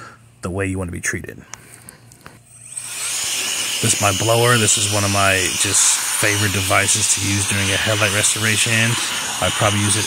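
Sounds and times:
cordless air blower whining: 0:02.2 - 0:10.0.

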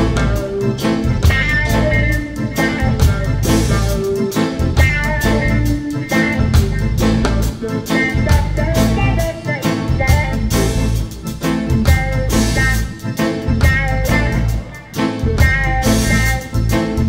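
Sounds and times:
drum kit: 0:00.0 - 0:17.0
electric bass: 0:00.0 - 0:17.0
horn section: 0:00.0 - 0:17.0
rhythm guitar: 0:00.0 - 0:17.0.

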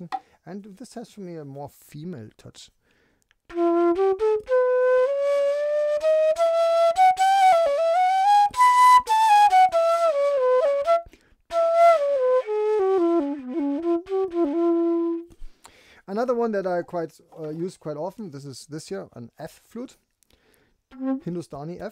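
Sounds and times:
solo bamboo flute melody: 0:03.5 - 0:15.4, 0:20.9 - 0:21.3.

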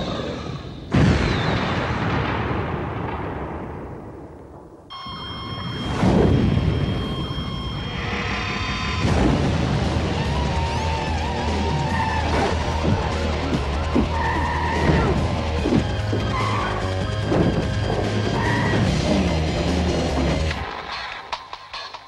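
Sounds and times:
trailer music with low bass: 0:05.8 - 0:21.9
tyres squealing: 0:10.1 - 0:21.2.

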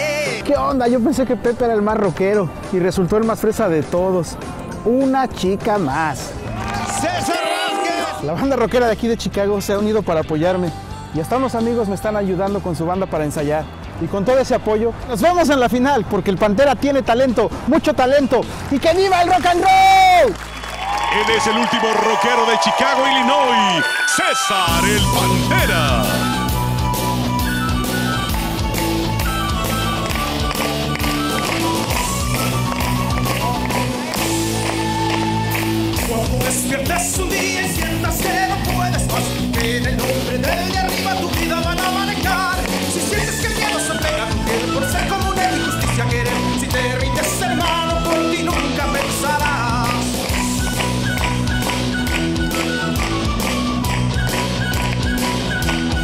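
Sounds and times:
sustained keyboard melody: 0:23.0 - 0:56.0
guitar: 0:23.7 - 0:56.0
drums beating steadily: 0:24.7 - 0:56.0.

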